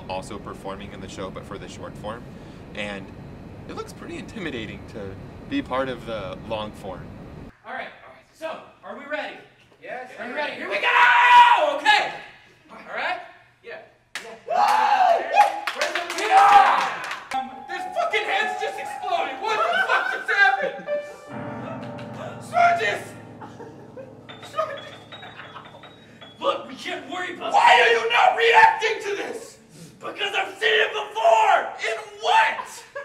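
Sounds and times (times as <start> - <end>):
people shouting and yelling: 10.4 - 12.4, 14.4 - 21.1, 26.4 - 32.8.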